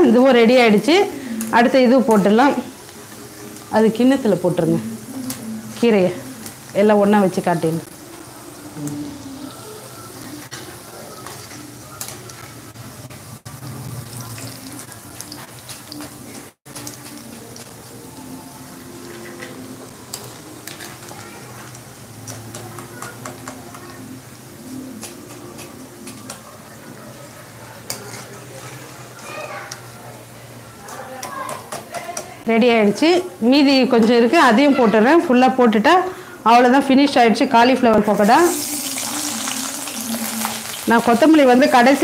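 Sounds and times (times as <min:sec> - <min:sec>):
fritters sizzling in hot oil: 0:00.1 - 0:30.2, 0:38.1 - 0:42.0.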